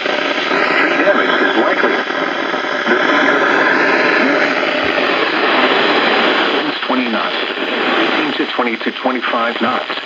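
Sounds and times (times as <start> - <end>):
radio static: 0.0 - 10.0
faint voice: 0.4 - 7.4, 8.0 - 10.0.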